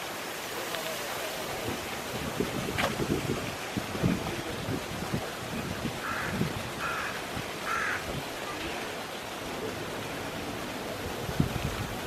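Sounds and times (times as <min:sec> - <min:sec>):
wind buffeting microphone: 0:01.4 - 0:08.4, 0:10.9 - 0:12.0.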